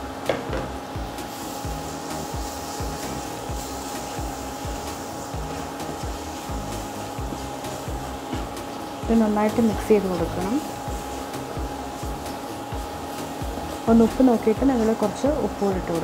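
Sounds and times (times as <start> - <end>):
cooling fan hum with whine: 0.0 - 16.0
spatula stirring in a pan: 1.3 - 16.0.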